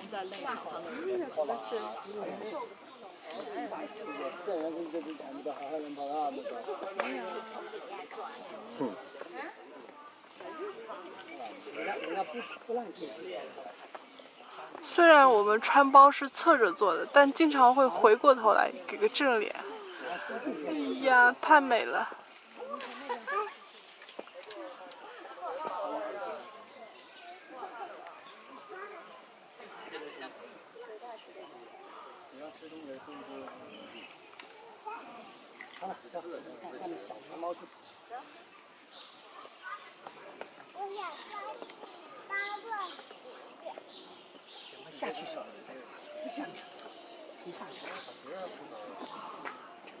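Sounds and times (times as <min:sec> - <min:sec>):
faint background chatter: 0:00.0 - 0:50.0
high insect drone: 0:00.0 - 0:50.0
murmured voices: 0:00.0 - 0:50.0.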